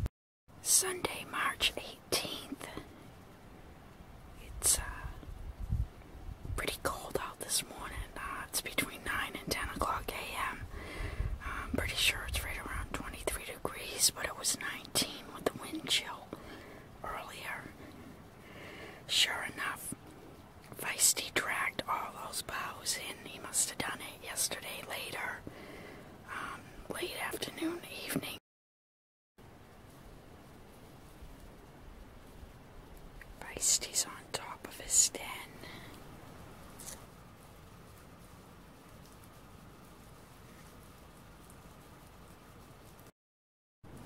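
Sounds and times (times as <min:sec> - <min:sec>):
whispered speech: 0:00.6 - 0:02.8, 0:06.6 - 0:10.6, 0:17.0 - 0:17.8, 0:19.1 - 0:19.9, 0:26.3 - 0:28.4, 0:33.4 - 0:35.5
low rumble on microphone: 0:04.0 - 0:08.6, 0:09.5 - 0:13.4.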